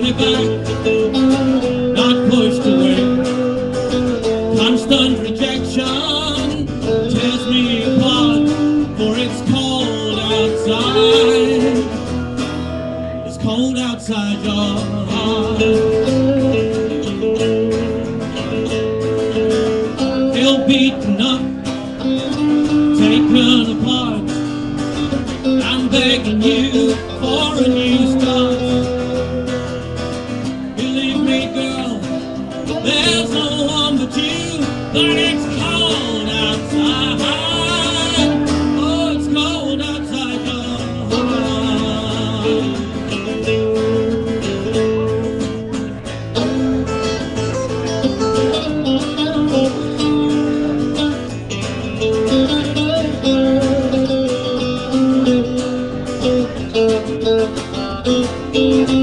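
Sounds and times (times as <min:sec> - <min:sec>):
live band playing: 0:00.0 - 0:59.0
strummed acoustic guitar: 0:00.0 - 0:59.0.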